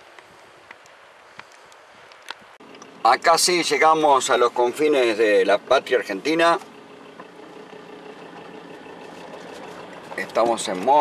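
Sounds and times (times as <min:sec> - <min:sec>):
tyres on gravel road: 0:00.0 - 0:11.0
vehicle engine hum: 0:00.0 - 0:11.0.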